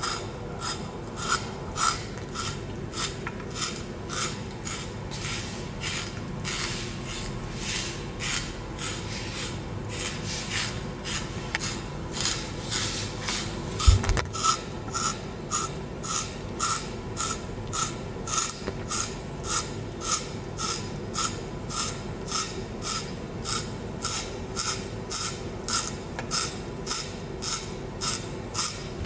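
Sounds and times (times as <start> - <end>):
spiral slicer rasping carrot: 0.0 - 29.0.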